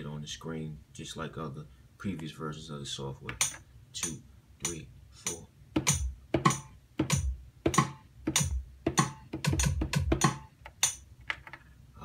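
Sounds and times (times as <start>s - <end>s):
kick drum and rim hits: 5.8s - 10.4s.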